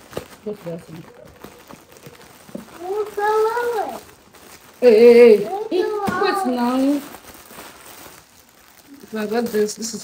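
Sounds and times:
plastic packaging rustling: 0.0s - 10.0s.

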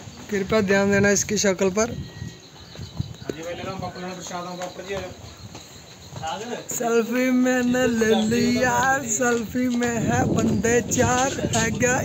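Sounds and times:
indistinct person's voice: 6.7s - 12.0s.

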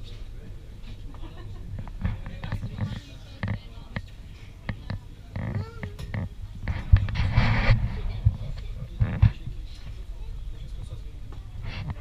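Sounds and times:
faint indistinct voices: 0.0s - 12.0s
muffled thumps from camera handling: 6.1s - 9.4s
clothing rustling on microphone: 6.6s - 10.0s.

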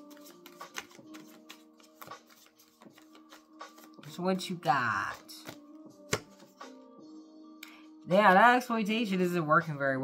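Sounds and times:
cards being shuffled: 0.0s - 6.5s.

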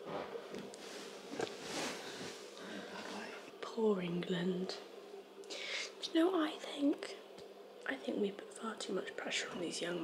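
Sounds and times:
woman speaking softly: 5.9s - 7.2s, 7.8s - 10.0s.

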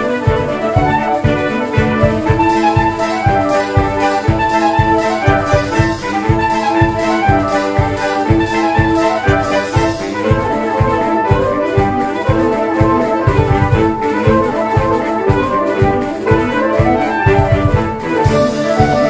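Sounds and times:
saxophone ensemble playing: 0.0s - 19.0s.

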